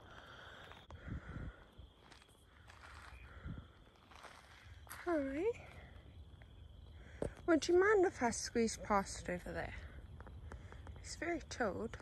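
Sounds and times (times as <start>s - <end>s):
footfalls on gravel: 3.9s - 5.3s.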